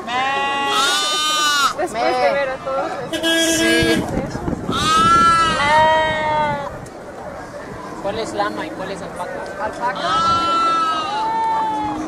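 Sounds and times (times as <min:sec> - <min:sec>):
sheep bleating: 0:00.0 - 0:01.8, 0:10.0 - 0:12.0.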